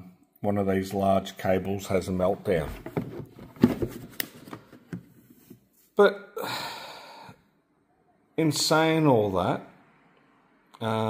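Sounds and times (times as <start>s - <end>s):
plastic box knocking and rubbing: 2.5s - 5.6s.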